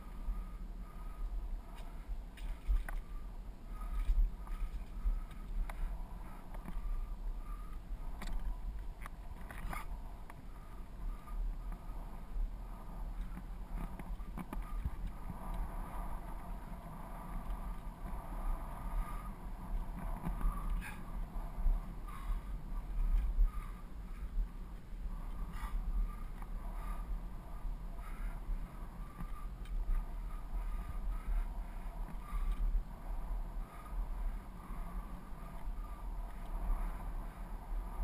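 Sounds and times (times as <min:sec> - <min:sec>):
bicycle tyre noise: 0:00.0 - 0:38.0
wind rumbling on microphone: 0:00.0 - 0:38.0.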